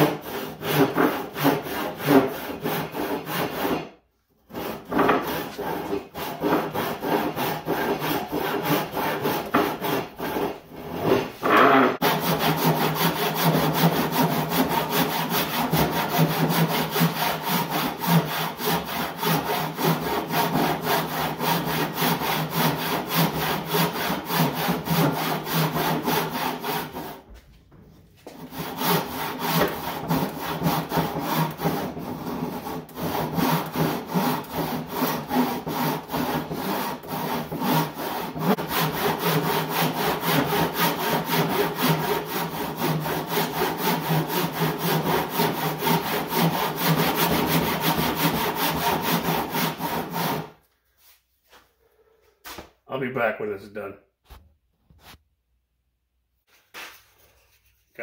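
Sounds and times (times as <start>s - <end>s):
hand saw ripping a board: 0.0s - 3.9s, 4.5s - 27.2s, 28.3s - 50.6s.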